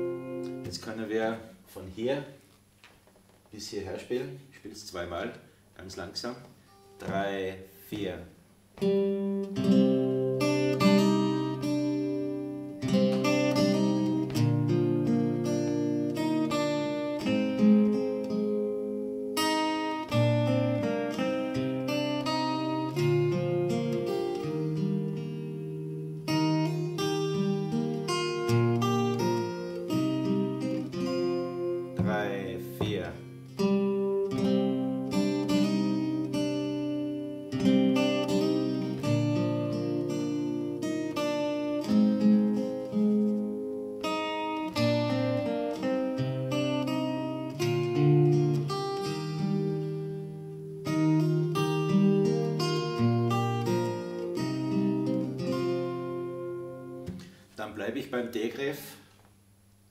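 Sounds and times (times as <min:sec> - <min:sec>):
fingerstyle acoustic guitar: 0:00.0 - 0:03.5, 0:06.5 - 0:08.0, 0:08.6 - 0:57.6.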